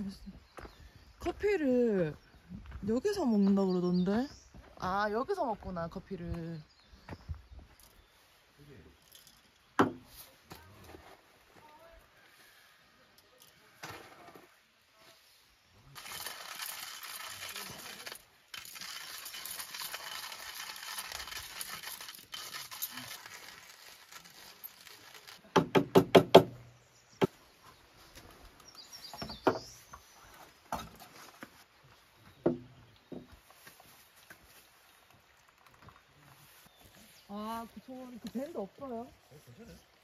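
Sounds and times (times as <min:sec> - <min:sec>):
hand coffee grinder grinding: 0:16.0 - 0:25.5.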